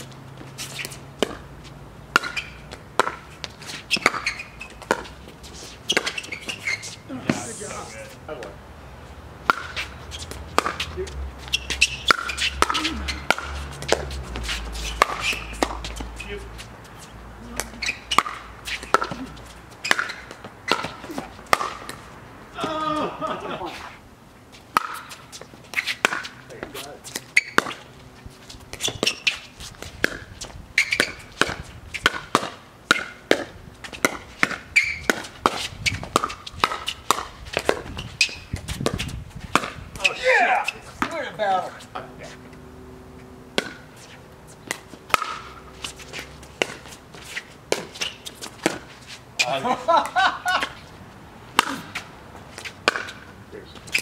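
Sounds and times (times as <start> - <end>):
ball bouncing on court: 0.8 - 1.5, 2.1 - 5.2, 9.4 - 16.4, 17.5 - 22.0, 30.0 - 40.2, 43.5 - 43.9, 52.8 - 54.0
players' voices: 6.9 - 8.6, 10.7 - 11.3, 12.2 - 18.0, 18.8 - 19.6, 22.5 - 24.0, 26.4 - 27.1, 39.9 - 42.6, 49.4 - 50.2, 53.4 - 54.0.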